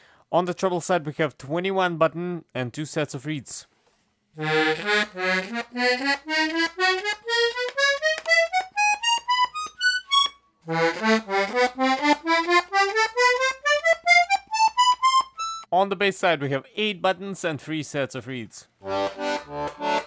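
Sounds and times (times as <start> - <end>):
button accordion rising notes: 4.4 - 15.7, 18.8 - 20.0.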